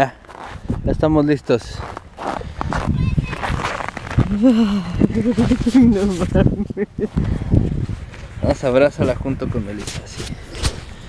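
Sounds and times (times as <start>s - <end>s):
scuffing on packed snow: 1.7s - 4.3s.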